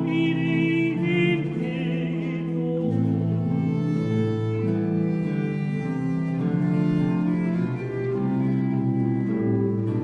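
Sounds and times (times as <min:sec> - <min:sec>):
baroque chamber music strings: 0:00.0 - 0:10.0
low bowed string notes: 0:00.0 - 0:10.0.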